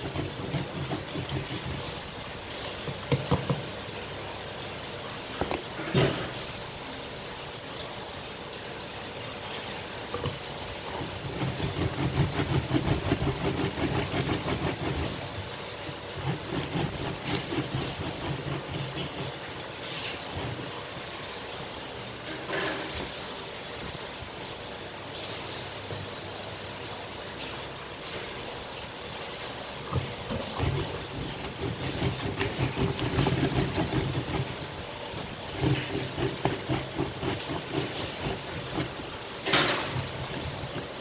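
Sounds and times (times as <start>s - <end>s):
citrus press grinding and squeezing: 0.0s - 3.8s, 10.1s - 21.0s, 29.9s - 41.0s.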